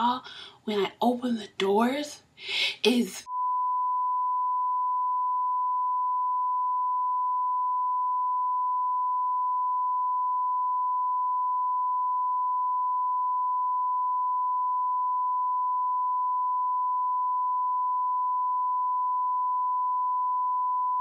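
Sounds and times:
continuous electronic beep tone: 3.3 - 21.0.

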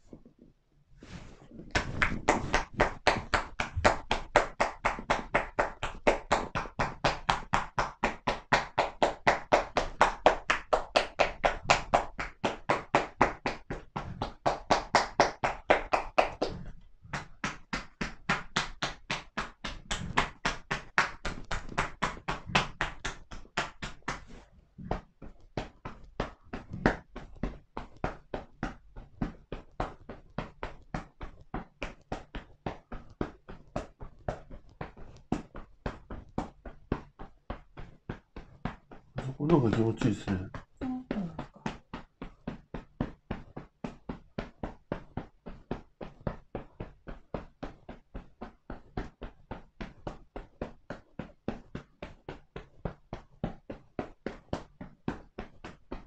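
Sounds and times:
hands tapping on back: 1.6 - 56.0.

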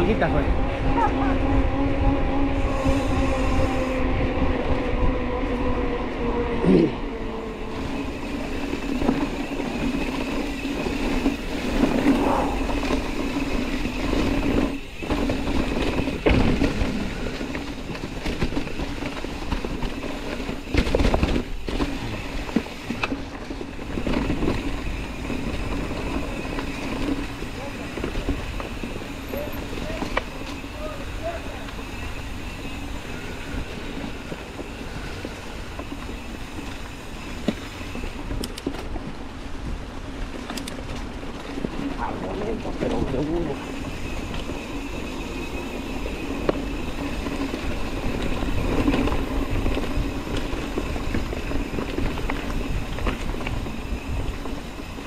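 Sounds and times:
wind on camera: 0.0 - 31.1, 31.9 - 55.0
bike hub buzzing hum: 0.0 - 55.0
tyres running through dry leaves: 7.3 - 55.0
bike knocking and rattling: 7.7 - 55.0.

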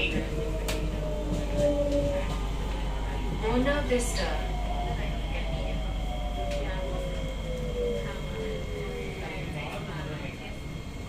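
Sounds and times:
train motor whine: 0.0 - 10.4
train running gear rumble: 0.0 - 11.0.

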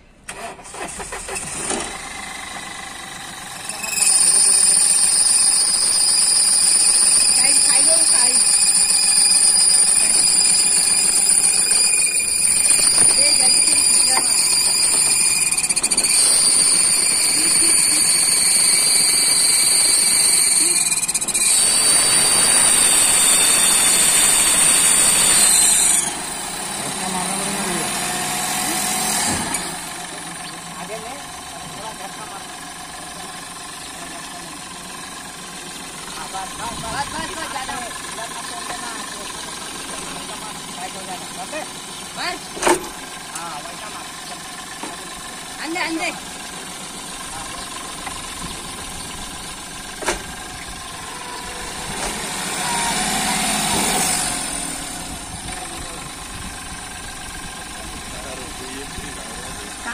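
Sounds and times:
car engine running: 0.0 - 59.9
high-pitched whine: 1.8 - 35.0.

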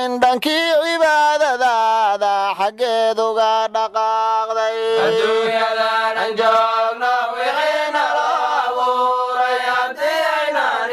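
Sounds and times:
solo voice chanting: 0.0 - 7.0.

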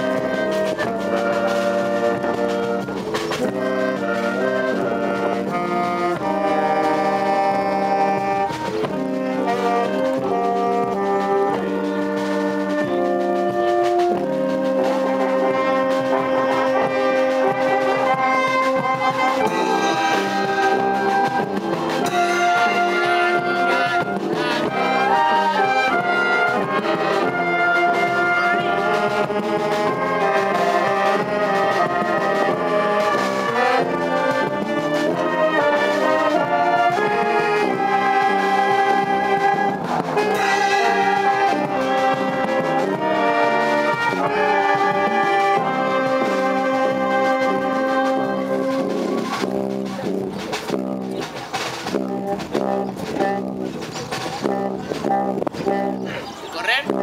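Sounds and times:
wind band playing: 0.0 - 57.0.

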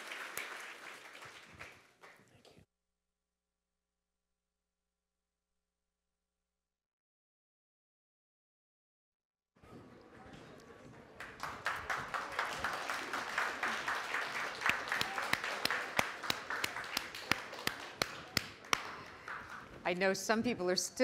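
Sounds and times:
audience applauding: 0.0 - 2.5, 11.2 - 19.8.

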